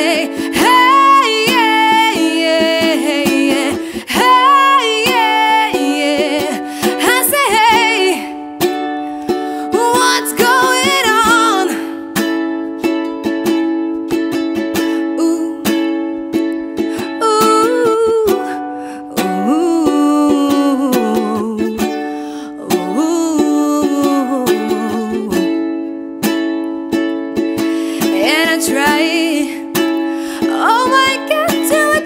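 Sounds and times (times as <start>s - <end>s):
woman singing wordless melody: 0.0s - 12.4s, 14.8s - 26.2s, 27.9s - 32.0s
ukulele strumming: 0.0s - 32.0s.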